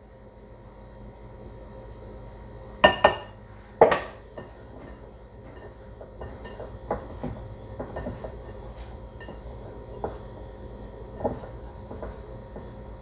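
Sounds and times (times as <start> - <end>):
low steady hum: 0.0 - 13.0
scraping dough in bowl: 4.4 - 10.4, 11.0 - 12.8.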